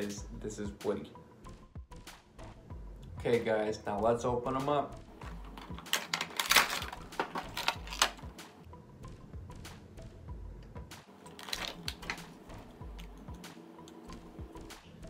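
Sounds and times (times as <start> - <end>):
quiet background music: 0.0 - 15.0
packaging crinkling and crackling: 5.2 - 8.3, 11.2 - 13.1.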